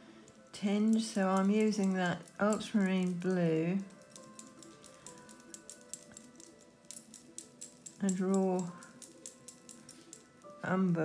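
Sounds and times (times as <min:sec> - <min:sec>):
faint background music: 0:00.0 - 0:11.0
brush tapping in paint palette: 0:00.7 - 0:10.6.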